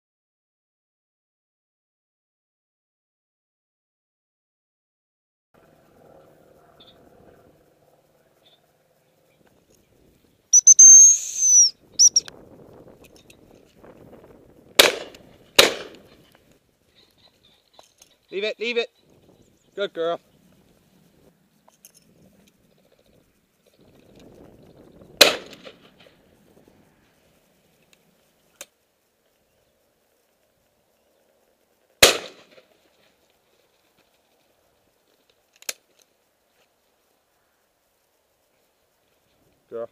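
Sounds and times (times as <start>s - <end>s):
dog whistle blown: 10.5s - 12.3s
shotgun shots: 14.8s - 16.0s, 25.2s - 25.8s, 32.0s - 32.6s.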